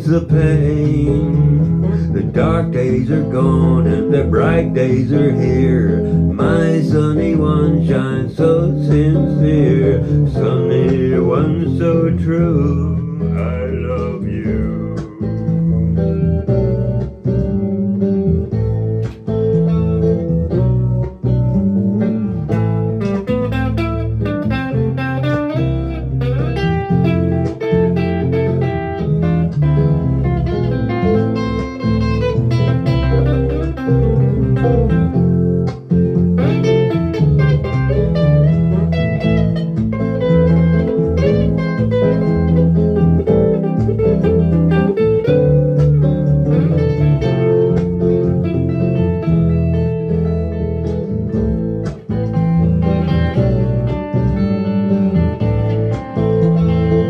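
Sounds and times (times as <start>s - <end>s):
electric guitar picking notes: 0.0s - 57.0s.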